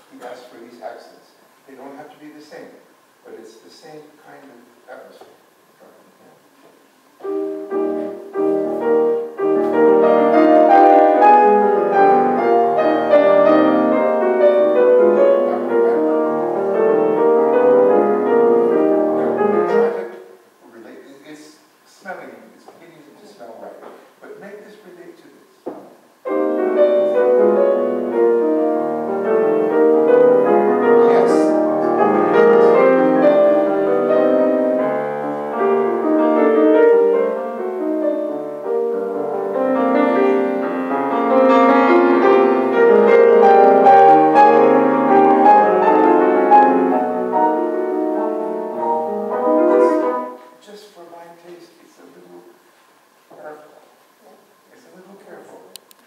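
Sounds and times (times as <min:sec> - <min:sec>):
grand piano chords: 0:07.1 - 0:20.7, 0:25.7 - 0:51.2
knock: 0:25.6 - 0:26.0.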